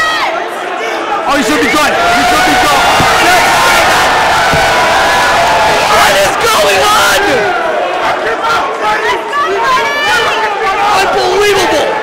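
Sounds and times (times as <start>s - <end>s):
crowd yelling and shouting: 0.0s - 12.0s.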